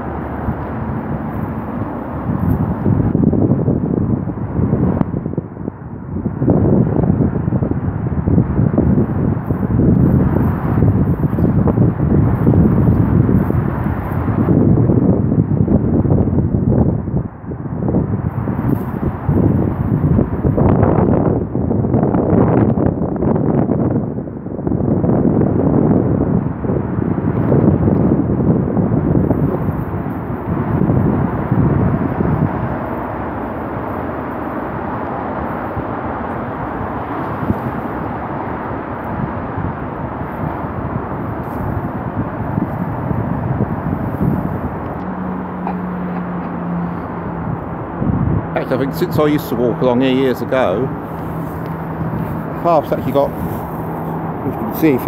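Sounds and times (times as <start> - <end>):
road traffic: 0.0 - 55.0
wind on microphone: 0.0 - 55.0.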